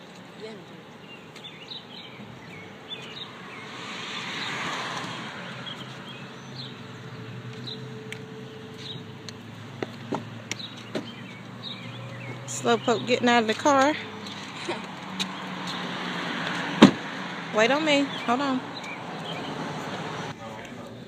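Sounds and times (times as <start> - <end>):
car passing: 0.7 - 21.0.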